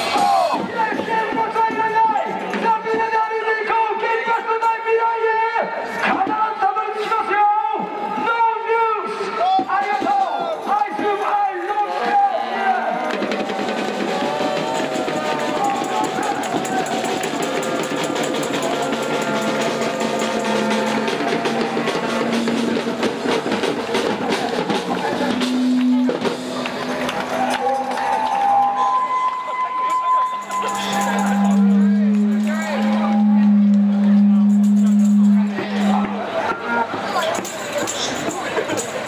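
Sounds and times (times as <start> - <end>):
street band drums and cymbals: 0.0 - 3.8, 12.7 - 39.0
crowd voices: 0.0 - 39.0
low brass notes: 12.8 - 37.8.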